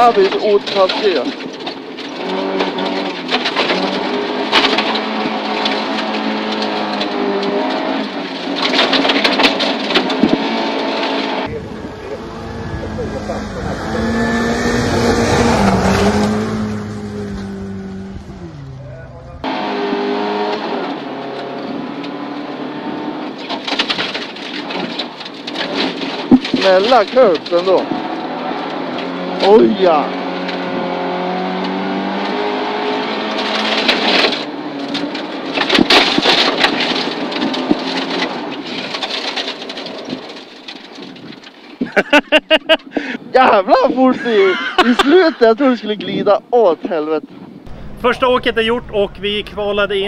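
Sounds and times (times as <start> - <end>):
car engine pulling hard: 0.0 - 46.7, 47.3 - 50.0
car passing by: 11.9 - 19.0.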